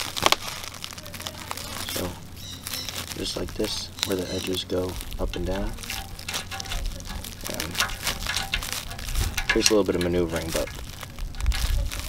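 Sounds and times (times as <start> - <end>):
crinkling and scraping clicks: 0.0 - 12.0
plastic packaging rustling: 0.0 - 12.0.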